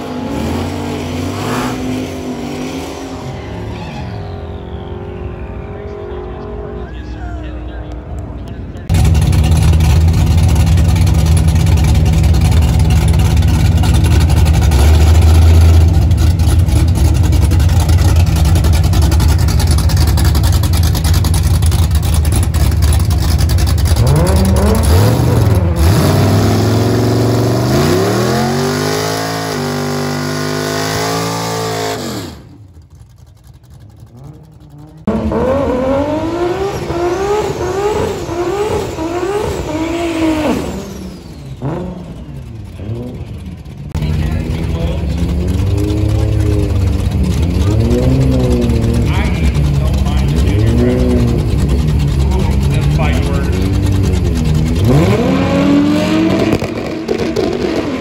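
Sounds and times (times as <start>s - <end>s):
car engine revving: 0.0s - 58.0s
car accelerating through gears: 23.8s - 32.6s, 34.1s - 58.0s.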